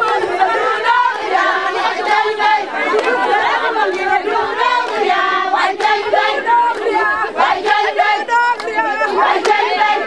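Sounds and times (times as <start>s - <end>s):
chatter: 0.0s - 10.0s
women singing in chorus: 0.0s - 10.0s.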